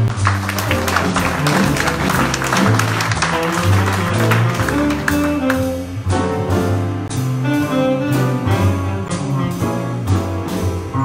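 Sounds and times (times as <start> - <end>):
drums and cymbals: 0.0 - 11.0
piano: 0.0 - 11.0
upright bass notes: 0.0 - 11.0.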